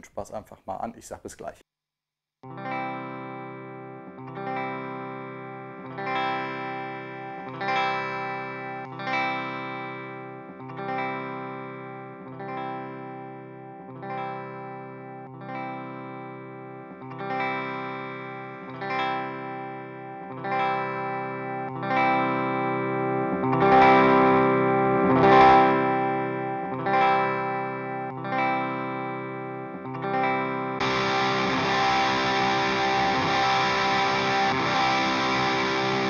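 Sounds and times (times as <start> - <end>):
electric guitar chord ringing: 2.5 - 36.0.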